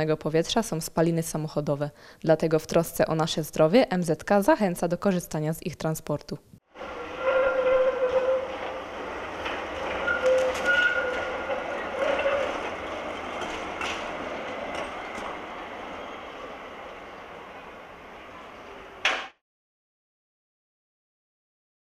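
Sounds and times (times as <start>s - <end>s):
wheel squeal: 6.8s - 13.9s
tram running on rails: 6.8s - 19.4s
clicks over rail joints: 8.0s - 15.4s.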